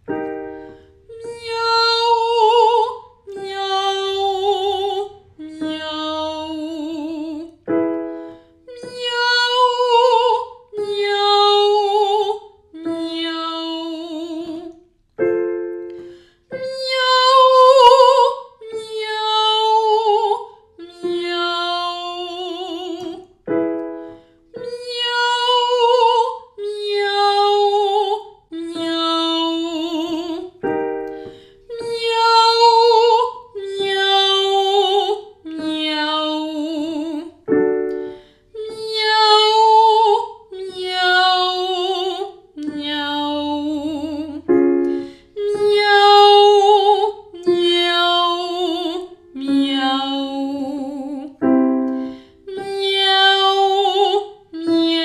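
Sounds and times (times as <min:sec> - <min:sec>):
digital piano cue: 0:00.0 - 0:01.6, 0:37.4 - 0:38.5, 0:51.4 - 0:53.1
woman singing vocal exercise: 0:01.0 - 0:07.6, 0:08.6 - 0:14.8, 0:16.5 - 0:23.4, 0:24.6 - 0:55.0.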